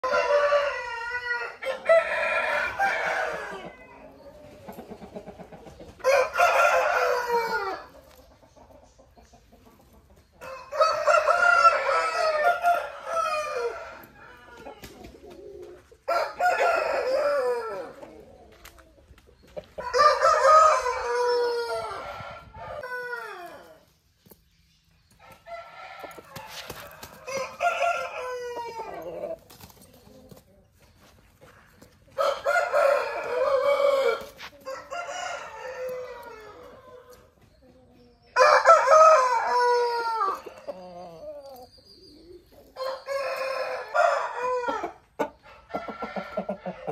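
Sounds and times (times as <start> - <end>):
roosters crowing: 0.0 - 4.8, 5.9 - 8.2, 10.4 - 18.4, 19.8 - 23.9, 25.2 - 29.5, 32.1 - 37.4, 38.3 - 41.8, 42.7 - 46.9.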